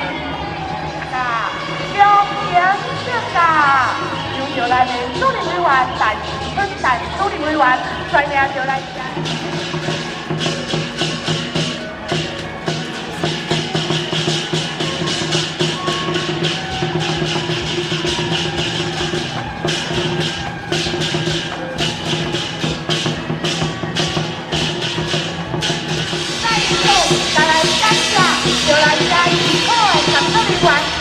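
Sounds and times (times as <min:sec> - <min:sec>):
cymbals clashing: 0:00.0 - 0:31.0
drum beating fast rhythm: 0:00.0 - 0:31.0.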